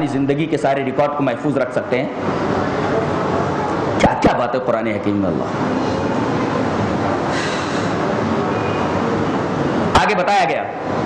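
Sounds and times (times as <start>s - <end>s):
passing traffic rumble and hiss: 0.0s - 11.0s.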